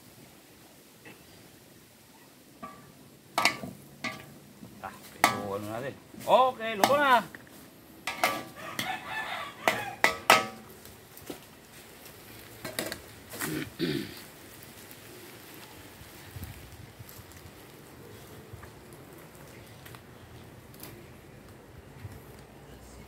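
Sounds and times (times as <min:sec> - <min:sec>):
spatulas scraping a wok: 0:08.1 - 0:09.0
chickens calling: 0:08.1 - 0:10.9.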